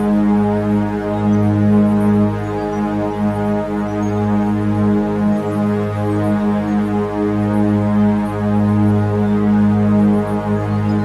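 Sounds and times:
meditation music drone: 0.0 - 11.0.

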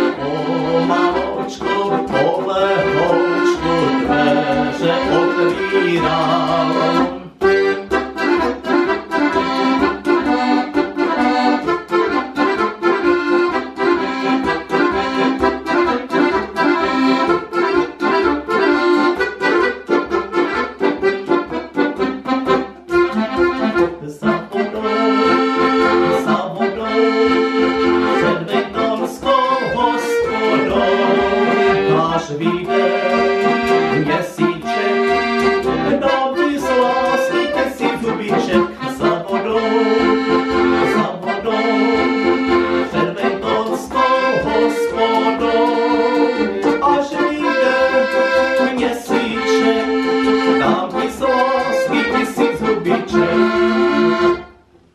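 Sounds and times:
piano accordion playing: 0.0 - 54.9.

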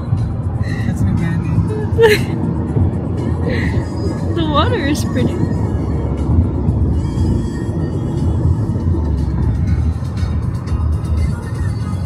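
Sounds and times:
car road and engine rumble: 0.0 - 12.0
music playing: 0.0 - 12.0.

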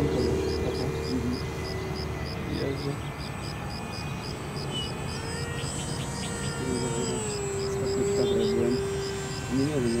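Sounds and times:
model airplane propeller drone: 0.0 - 10.0.

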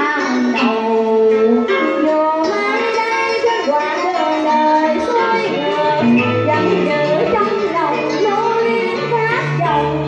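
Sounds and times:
instrumental backing: 0.0 - 10.0
woman singing into microphone: 0.0 - 10.0.

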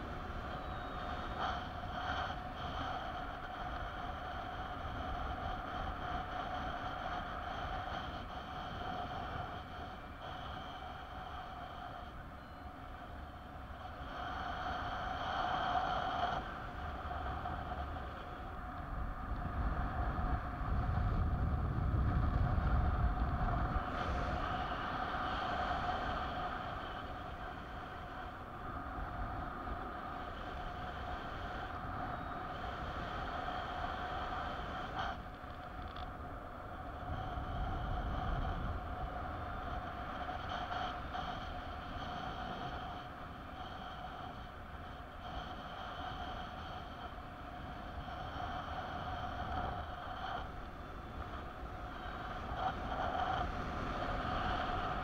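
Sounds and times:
faint steady whistle: 0.0 - 18.6, 23.7 - 35.3
wind gust buffeting microphone: 0.0 - 55.0
wind rushing over microphone: 0.0 - 55.0.

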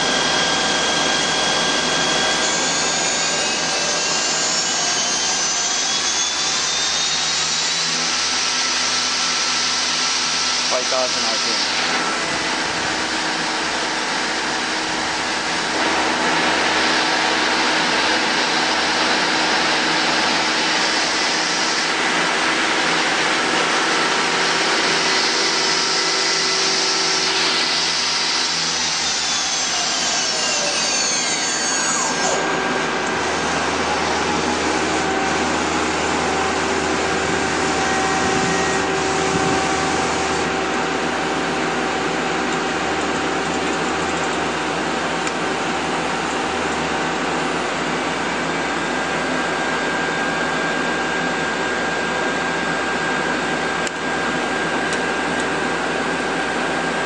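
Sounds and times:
lathe spindle whine: 0.0 - 57.0
machine running hum: 0.0 - 57.0.

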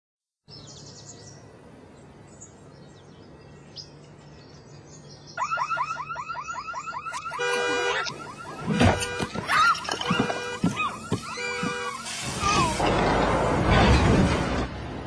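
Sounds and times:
faint birds chirping: 0.5 - 7.2
car alarm warbling and blaring: 5.4 - 12.1.

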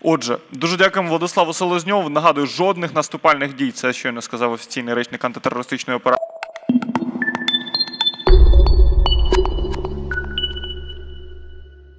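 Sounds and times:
high pinging tones: 6.2 - 11.9
deep bass boom: 8.3 - 11.6.

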